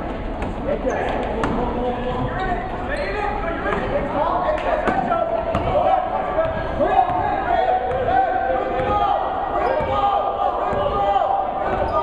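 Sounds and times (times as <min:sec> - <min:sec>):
gym background noise: 0:00.0 - 0:12.0
spectators and players voices: 0:00.0 - 0:12.0.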